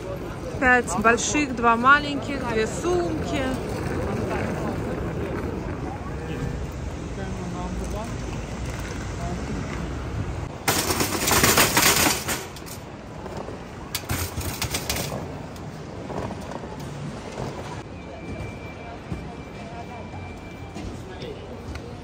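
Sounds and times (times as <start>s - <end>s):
luggage trolley rumbling: 0.0s - 6.8s, 10.4s - 19.5s
trolley clattering loudly: 10.5s - 17.8s.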